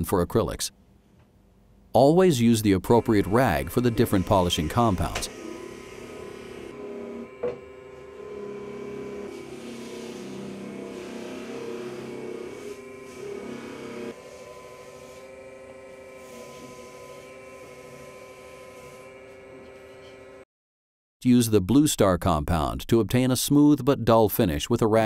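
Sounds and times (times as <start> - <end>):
polishing lathe motor hum: 2.8 - 20.4.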